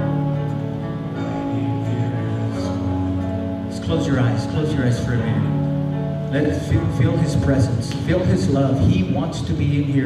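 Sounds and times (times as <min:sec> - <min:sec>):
keyboard and guitars chord: 0:00.0 - 0:10.0
man's voice: 0:01.0 - 0:10.0.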